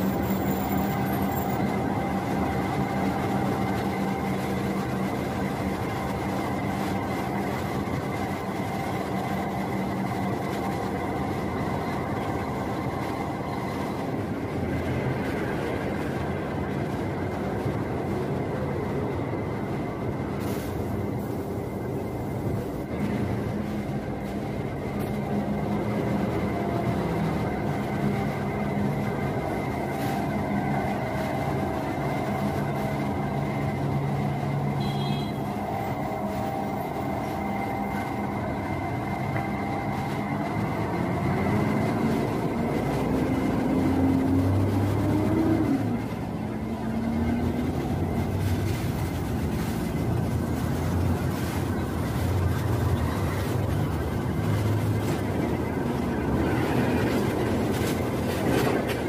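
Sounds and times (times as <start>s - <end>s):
bus diesel engines running: 0.0s - 59.0s.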